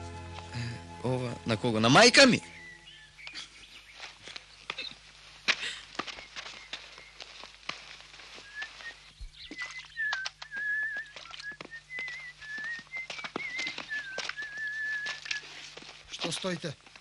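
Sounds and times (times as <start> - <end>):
person whistling tune: 10.0 - 15.5.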